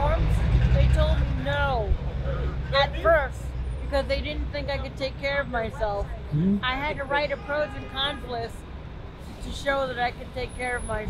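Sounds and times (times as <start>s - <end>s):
large vehicle passing: 0.0s - 4.0s
heavy street traffic rumble: 0.0s - 11.0s.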